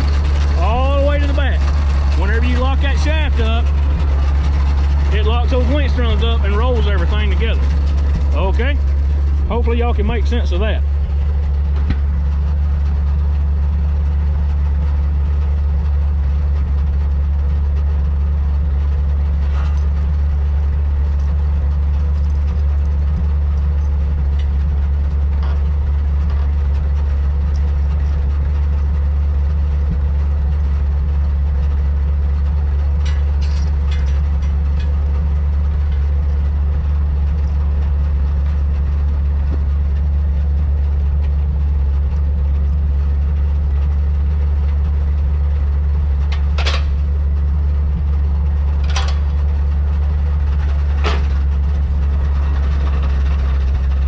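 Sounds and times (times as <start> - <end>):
truck engine idling: 0.0 - 54.0.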